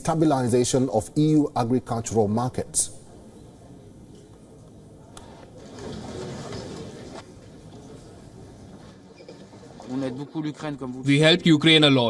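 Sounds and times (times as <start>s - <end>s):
room murmur: 1.3s - 11.6s
man speaking: 9.8s - 12.0s.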